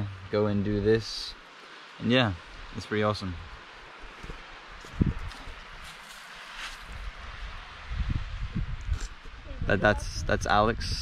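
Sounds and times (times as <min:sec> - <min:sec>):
wind rumble on microphone: 0:02.4 - 0:11.0
microphone handling noise: 0:04.2 - 0:06.0, 0:08.4 - 0:10.0.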